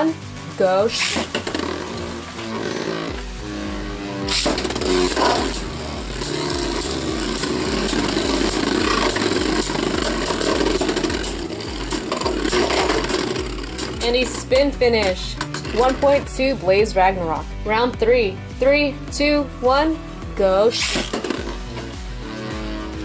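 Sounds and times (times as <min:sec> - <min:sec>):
spinning tops whirring: 0:00.8 - 0:16.7, 0:20.8 - 0:23.0
spinning tops clacking: 0:04.3 - 0:16.3, 0:20.8 - 0:21.8.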